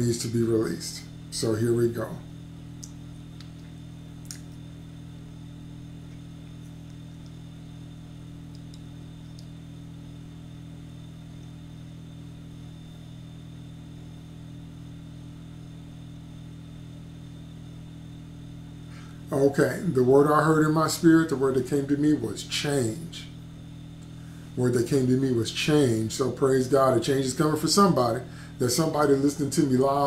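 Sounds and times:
steady low hum: 0:00.0 - 0:30.0.

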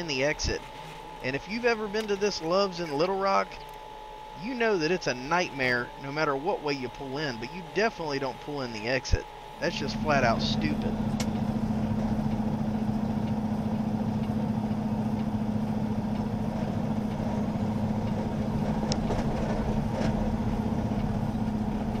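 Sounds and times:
diesel engine idling: 0:00.0 - 0:22.0.

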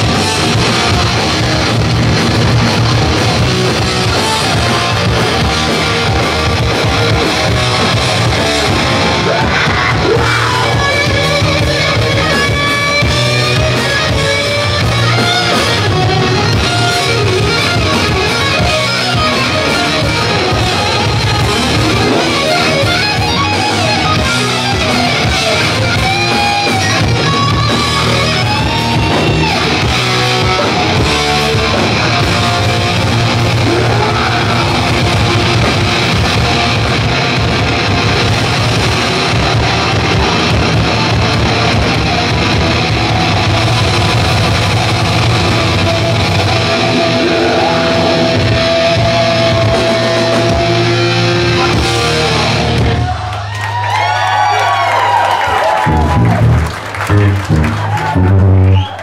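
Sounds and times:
distorted electric guitar: 0:00.0 - 0:59.0
punk band playing live: 0:00.0 - 0:59.0.

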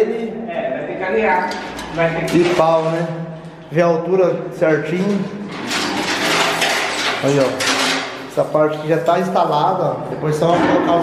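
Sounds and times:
steel frame scraping on concrete: 0:05.5 - 0:08.3.

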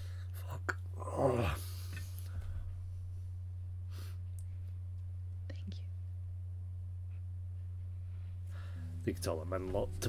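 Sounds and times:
steady low hum: 0:00.0 - 0:10.0
person whispering: 0:00.3 - 0:01.6, 0:05.4 - 0:06.0.

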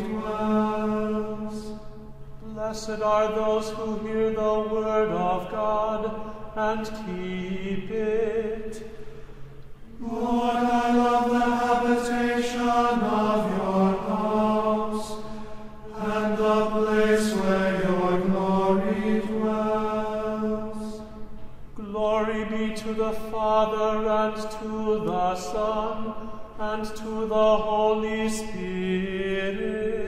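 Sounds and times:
person singing liturgical chant: 0:00.0 - 0:09.0, 0:09.9 - 0:30.0.

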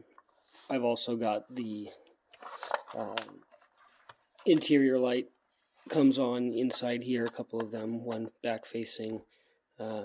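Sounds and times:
hands rustling plastic: 0:02.3 - 0:05.0.

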